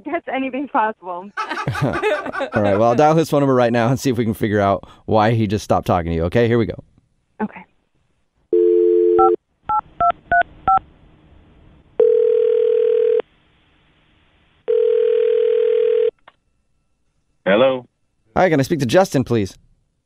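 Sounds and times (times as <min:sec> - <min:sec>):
dial tone: 0:08.5 - 0:09.4, 0:12.0 - 0:13.2, 0:14.7 - 0:16.1.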